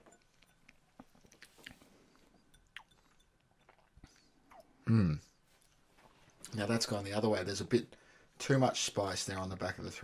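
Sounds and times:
tongue and lip clicks: 0.1 - 4.8.

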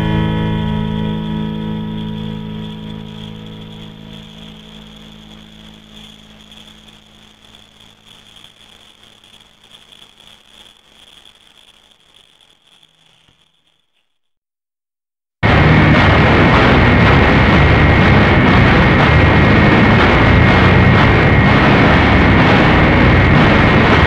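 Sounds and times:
distorted electric guitar drone: 0.0 - 9.9, 15.4 - 24.0
grainy flickering noise: 0.0 - 14.2, 15.4 - 24.0.

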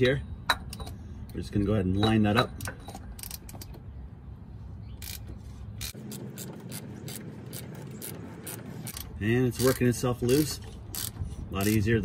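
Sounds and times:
socket ratchet clicking: 5.0 - 11.9.

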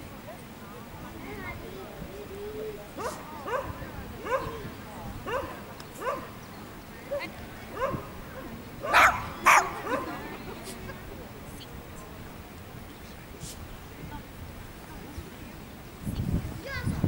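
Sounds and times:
small dog barking: 3.0 - 4.6, 5.2 - 6.4, 7.1 - 8.1, 8.8 - 10.1.

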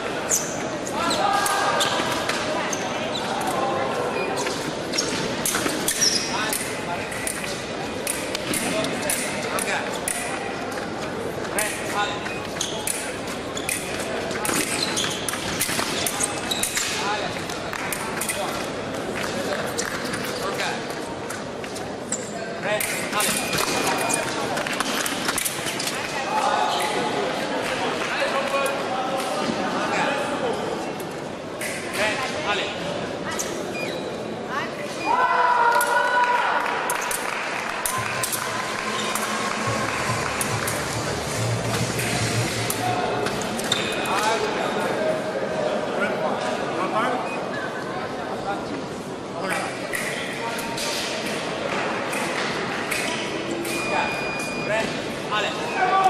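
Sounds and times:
murmur of voices: 0.0 - 56.0
fencing blades clicking: 5.4 - 10.4.

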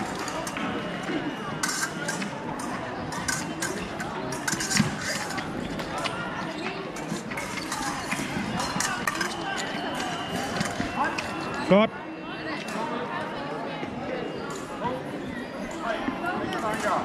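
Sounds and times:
hall chatter: 0.0 - 17.0.

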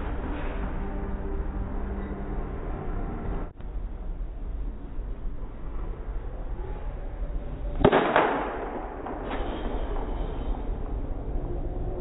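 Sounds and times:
bat striking ball: 7.8 - 9.3.

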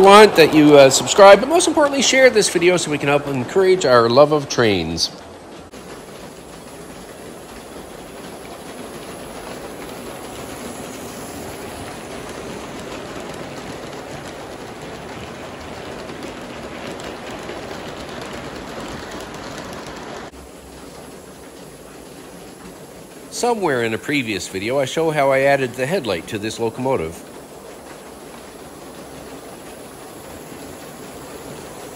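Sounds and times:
model train rolling past: 0.0 - 31.9.

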